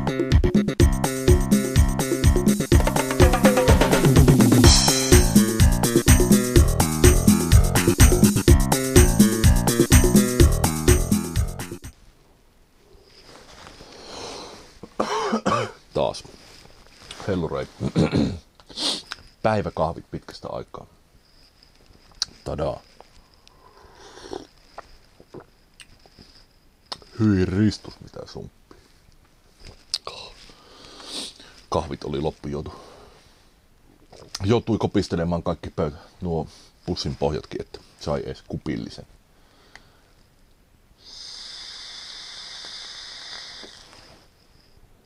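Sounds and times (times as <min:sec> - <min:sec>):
e-cigarette draw hiss: 0:18.6 - 0:19.2, 0:23.5 - 0:24.6, 0:30.5 - 0:31.6, 0:41.0 - 0:44.3
person slurping coffee: 0:23.7 - 0:24.6, 0:41.5 - 0:43.9
swallowing and lip sounds: 0:24.2 - 0:26.0.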